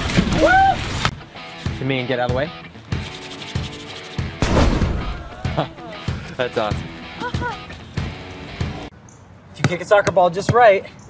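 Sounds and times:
palms rubbing together: 0:02.8 - 0:04.4
fire-burst sound effect: 0:04.4 - 0:05.7.

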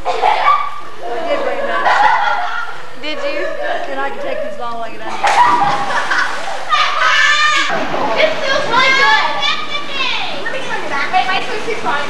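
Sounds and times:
girls shouting and squealing: 0:00.2 - 0:10.5.

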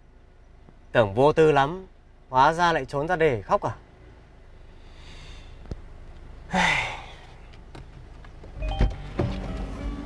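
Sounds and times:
man sighing: 0:06.5 - 0:07.4
car door unlatched and opened: 0:08.5 - 0:10.0
soft background music: 0:08.6 - 0:10.0.

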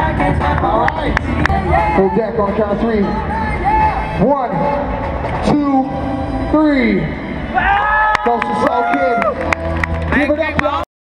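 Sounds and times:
crowd shouting and whooping: 0:07.5 - 0:10.8.

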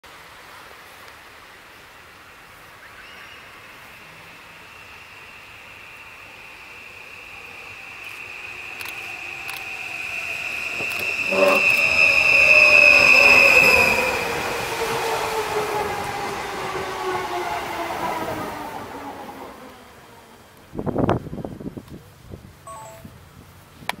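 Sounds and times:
electric train whine: 0:03.4 - 0:21.6
train motor tones: 0:05.4 - 0:15.6.

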